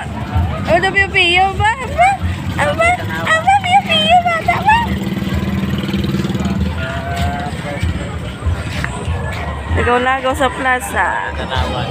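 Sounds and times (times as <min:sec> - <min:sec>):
small motorcycle engine passing: 0:00.4 - 0:07.5.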